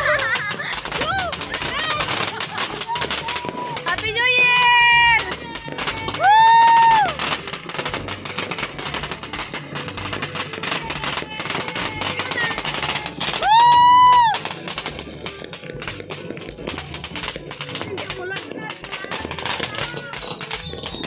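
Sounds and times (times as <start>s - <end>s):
fireworks crackling: 0.0s - 21.0s.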